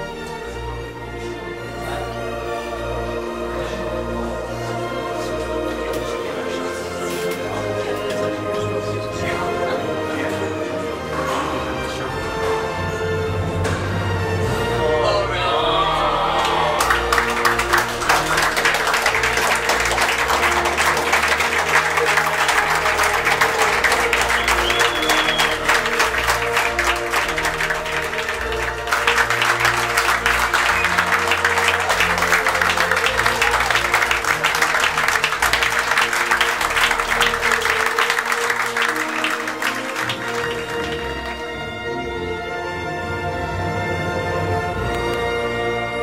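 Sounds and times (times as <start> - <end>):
music: 0.0 - 46.0
crowd clapping: 15.9 - 41.8.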